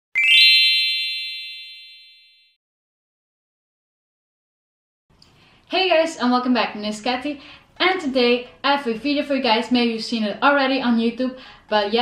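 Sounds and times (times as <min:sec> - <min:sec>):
bell-like chime run: 0:00.1 - 0:02.6.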